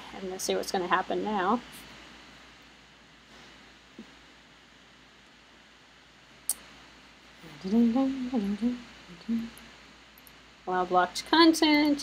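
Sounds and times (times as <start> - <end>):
woman humming: 7.4 - 9.6.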